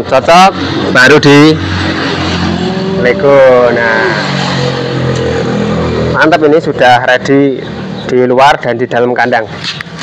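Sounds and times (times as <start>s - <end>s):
vehicle engine humming: 0.0s - 8.3s.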